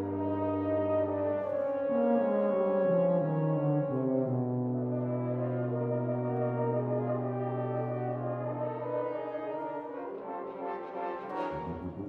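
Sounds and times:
french horns and tuba playing: 0:00.0 - 0:12.0.

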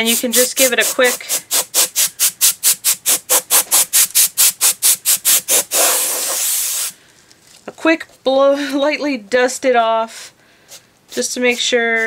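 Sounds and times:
dust blower puffing air: 0:00.0 - 0:07.0
steady hiss of air: 0:00.0 - 0:07.1.

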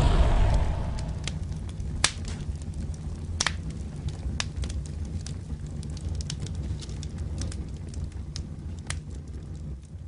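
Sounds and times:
low rumble of flames: 0:00.0 - 0:10.0
fire cracks and pops: 0:01.2 - 0:10.0.

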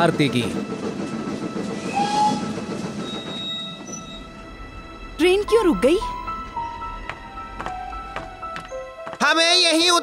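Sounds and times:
steam train running on track: 0:00.0 - 0:10.0.

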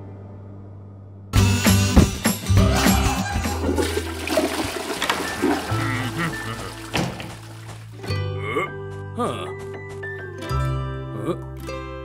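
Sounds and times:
background music: 0:00.0 - 0:12.0
toilet flushing: 0:02.7 - 0:08.0.

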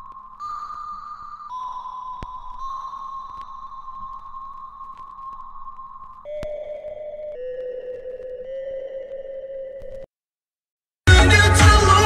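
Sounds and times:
held pitched tone stepping down: 0:00.0 - 0:10.1.

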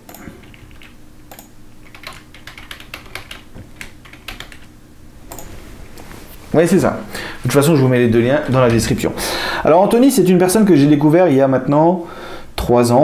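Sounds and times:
computer keyboard typing: 0:00.1 - 0:04.7, 0:05.3 - 0:05.5.

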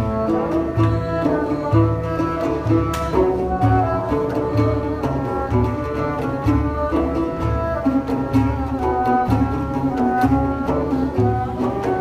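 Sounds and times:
low frame drum beats: 0:00.0 - 0:12.0
oud and bowed string melody: 0:00.0 - 0:12.0.

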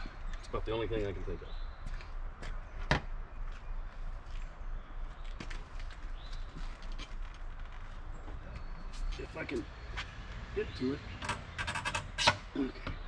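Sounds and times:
faint clicks and scuffs: 0:05.2 - 0:09.4.

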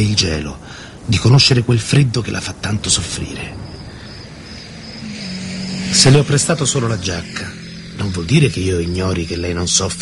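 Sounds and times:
low tone: 0:04.6 - 0:10.0.

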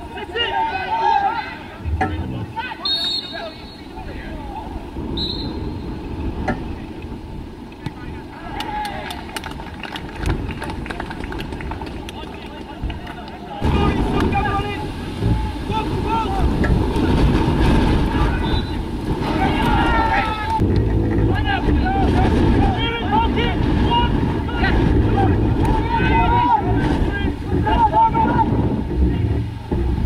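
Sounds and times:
players shouting: 0:00.0 - 0:05.4, 0:08.1 - 0:09.4, 0:13.2 - 0:17.2, 0:18.0 - 0:28.6
wind rumble on microphone: 0:03.8 - 0:30.0.

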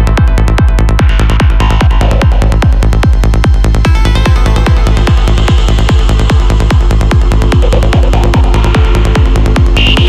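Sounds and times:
psytrance music: 0:00.0 - 0:10.0.

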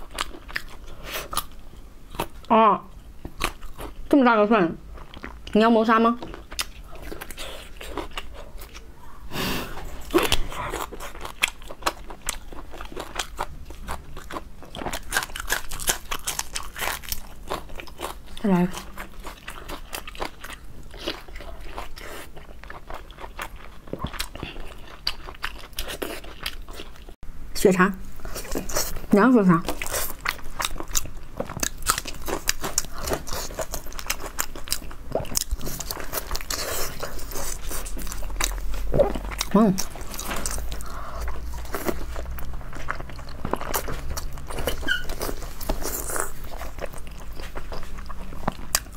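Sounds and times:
crunching and chewing green onion: 0:00.0 - 0:02.5, 0:03.2 - 0:04.2, 0:06.2 - 0:08.9, 0:09.9 - 0:27.2, 0:28.2 - 0:48.9.

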